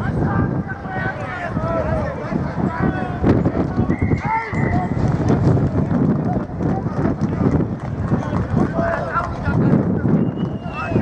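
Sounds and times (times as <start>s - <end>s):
referee's whistle: 3.9s - 4.8s, 10.2s - 11.0s.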